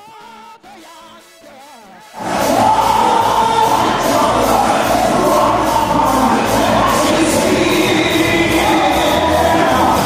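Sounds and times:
congregation singing with a band: 0.0 - 10.0.

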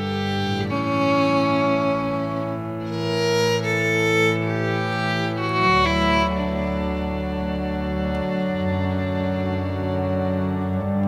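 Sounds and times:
slow bowed string melody: 0.0 - 11.0.

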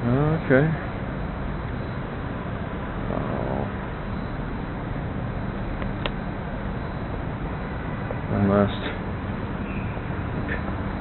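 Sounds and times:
distant traffic: 0.0 - 11.0.

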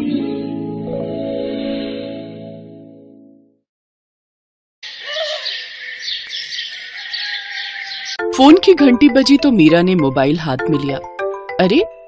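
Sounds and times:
small birds chirping: 4.8 - 8.2.

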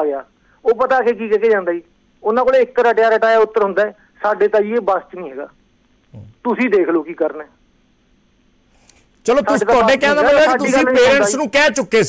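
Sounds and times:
man speaking over telephone: 9.3 - 12.0.

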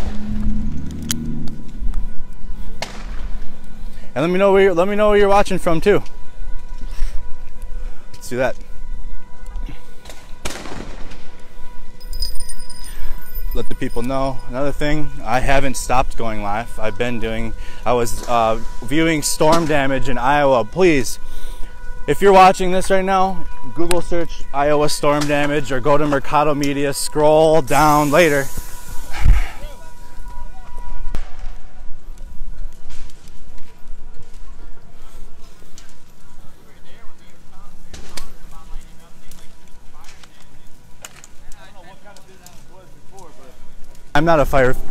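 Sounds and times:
fire low rumble: 0.0 - 44.9
faint steady high tone: 12.0 - 19.3, 23.4 - 31.1.

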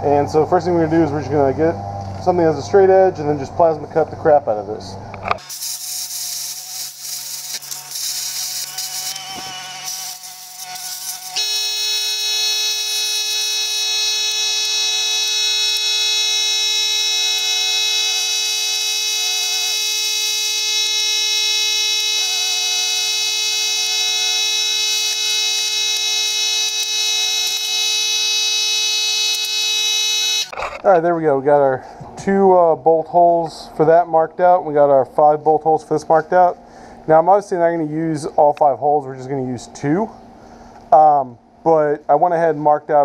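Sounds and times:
electric buzz with high whine: 0.0 - 31.0
plasma cutter hissing: 5.4 - 11.4.

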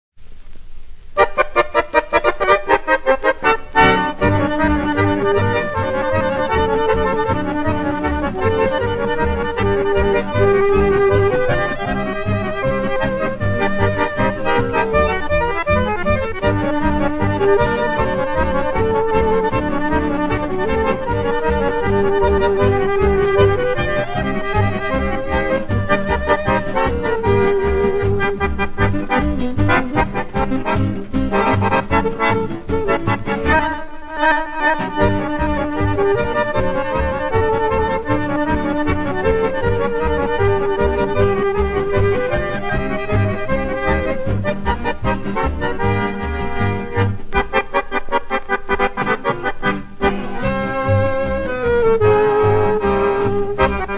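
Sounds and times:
accordion dance band: 1.2 - 53.9.

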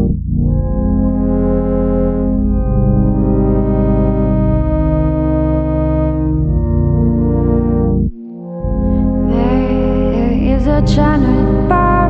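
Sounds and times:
low bass: 0.0 - 12.0
sustained synthesizer chords: 0.0 - 12.0.

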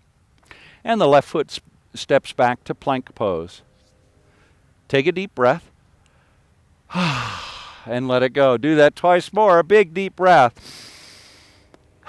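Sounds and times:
person sighing deeply: 6.9 - 7.9.

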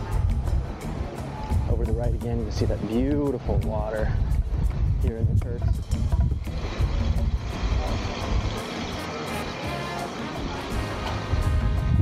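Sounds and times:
wind buffeting microphone: 0.0 - 8.9, 11.2 - 12.0.

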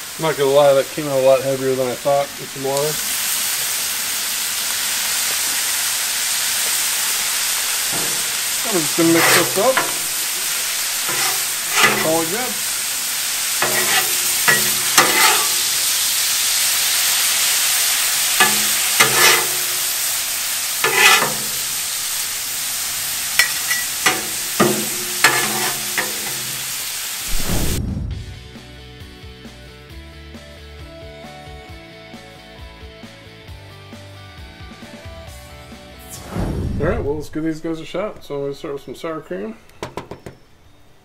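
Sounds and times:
meat and onions sizzling on griddle: 0.0 - 27.8
metal spatulas scraping and clacking: 7.9 - 12.6, 13.6 - 16.0, 18.4 - 20.0, 20.8 - 21.8, 23.4 - 26.7
background music: 28.2 - 36.6.

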